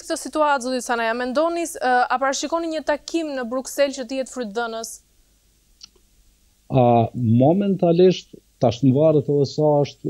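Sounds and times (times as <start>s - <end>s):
woman speaking: 0.0s - 5.0s.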